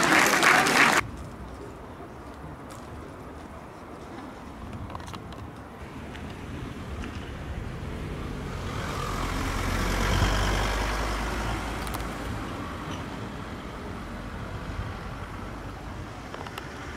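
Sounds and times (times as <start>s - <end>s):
vehicle passing by: 7.4s - 12.8s.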